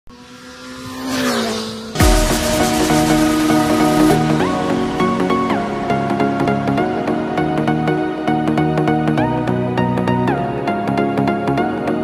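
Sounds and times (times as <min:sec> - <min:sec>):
motor vehicle driving past: 0:00.1 - 0:07.4.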